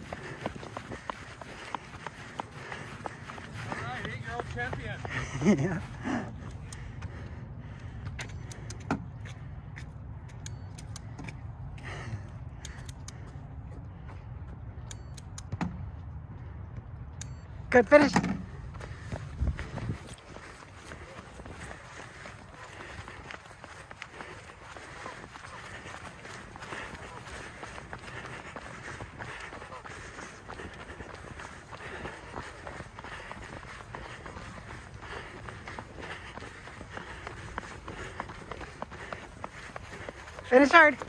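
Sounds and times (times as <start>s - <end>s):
running footsteps on track: 0.0s - 41.0s.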